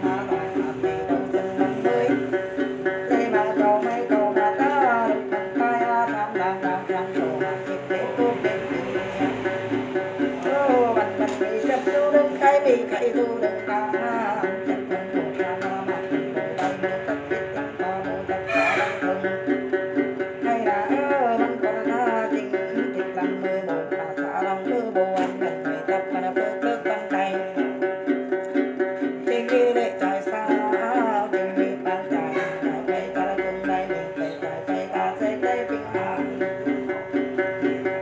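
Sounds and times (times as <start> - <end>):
person singing: 0.0 - 38.0
plucked lute: 0.0 - 38.0.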